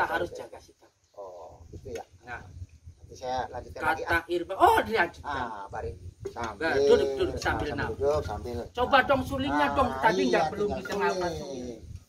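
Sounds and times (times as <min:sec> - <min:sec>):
man talking: 0:03.1 - 0:04.1, 0:05.2 - 0:11.9.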